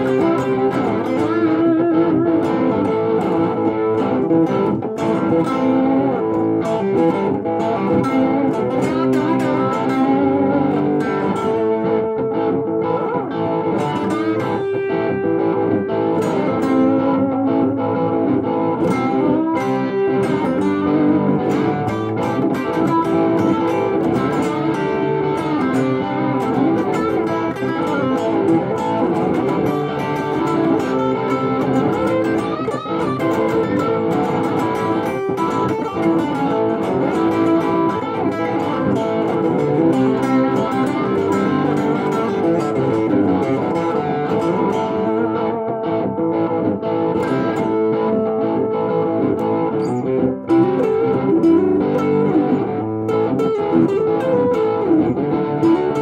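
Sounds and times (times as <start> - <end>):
electric guitar through amplifier: 0.0 - 56.0.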